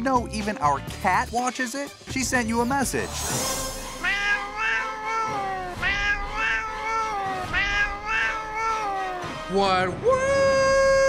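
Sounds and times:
cat meowing: 4.0s - 9.4s.

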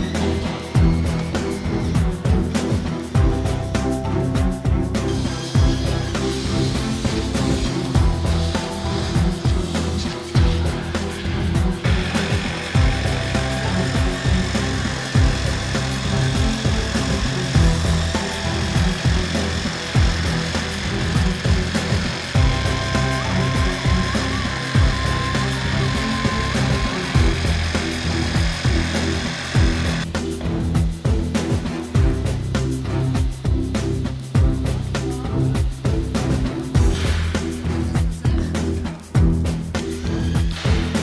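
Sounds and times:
electric tool running: 0.0s - 37.6s, 39.4s - 41.0s
background music with steady beat: 0.0s - 41.0s.

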